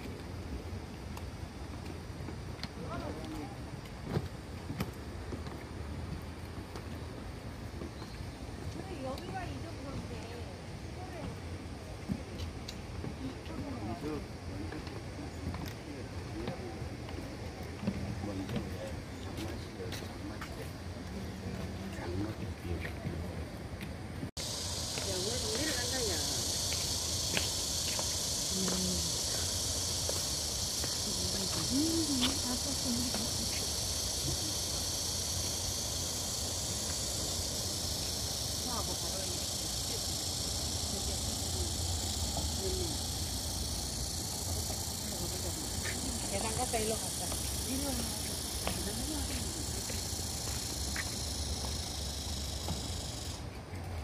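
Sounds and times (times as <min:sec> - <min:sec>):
faint voices: 0:08.7 - 0:53.5
high-pitched insect drone: 0:24.4 - 0:53.5.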